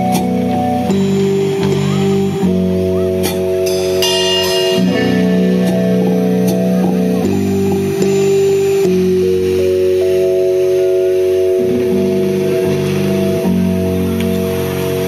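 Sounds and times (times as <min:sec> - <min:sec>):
drums: 0:00.0 - 0:15.0
electric guitar sustained chords: 0:00.0 - 0:15.0.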